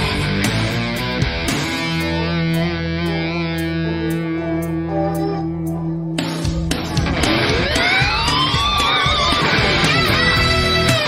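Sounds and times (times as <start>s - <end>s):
backing track with drums: 0.0s - 4.8s, 6.1s - 11.0s
electric guitar playing: 0.0s - 11.0s.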